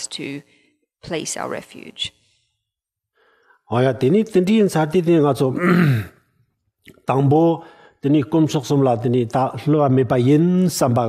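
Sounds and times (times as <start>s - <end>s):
man speaking: 3.7s - 6.0s.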